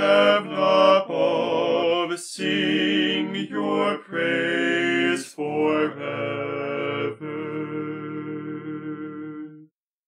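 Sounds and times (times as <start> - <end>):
male voices singing a hymn: 0.0 - 9.6.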